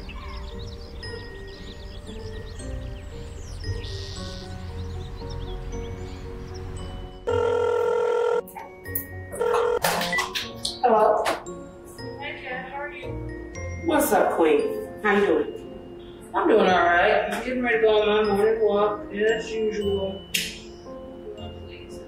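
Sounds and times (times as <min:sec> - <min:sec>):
soft background music: 0:00.0 - 0:22.0
telephone ringing tone: 0:07.2 - 0:08.5, 0:09.3 - 0:09.9.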